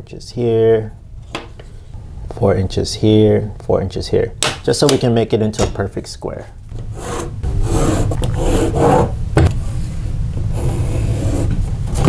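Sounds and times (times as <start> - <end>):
pencil scratching on drywall: 7.0 - 9.1.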